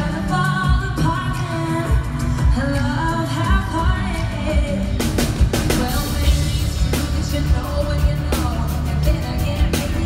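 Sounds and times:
band with drums: 0:00.0 - 0:10.0
woman singing into microphone: 0:00.0 - 0:10.0.

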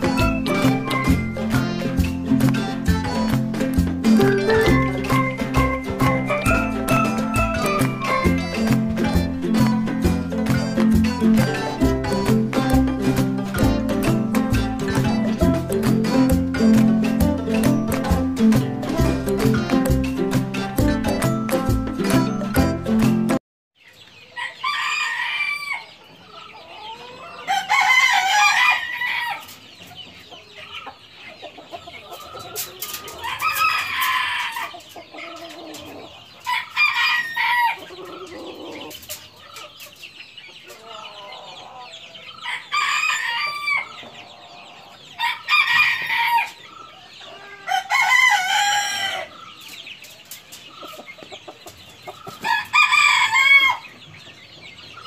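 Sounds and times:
high chatter of chickens: 0:00.0 - 0:23.2, 0:23.8 - 0:55.0
chickens crowing and clucking: 0:00.0 - 0:55.0.

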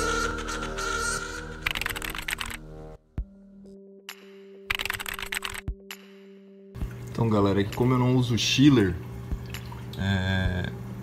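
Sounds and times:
keyboard typing clicks: 0:01.6 - 0:02.6, 0:04.7 - 0:05.7.

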